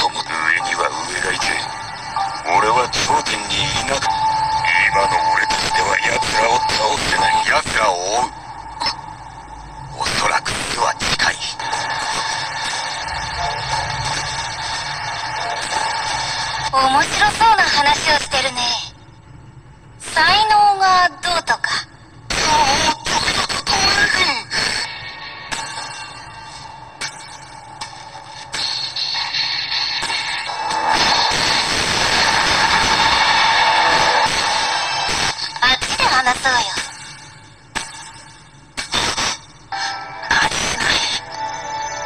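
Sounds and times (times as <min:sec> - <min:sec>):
eerie drone: 0:00.0 - 0:20.4, 0:21.6 - 0:38.5, 0:39.6 - 0:42.0
low rumble: 0:07.9 - 0:10.4.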